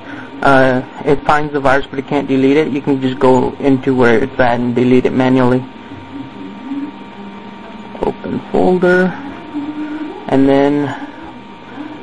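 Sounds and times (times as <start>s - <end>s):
computer electrical hum: 0.0s - 12.0s.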